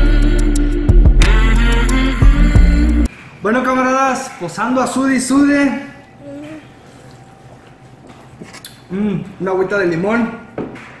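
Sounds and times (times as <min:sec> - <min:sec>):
person humming: 0:06.2 - 0:06.7.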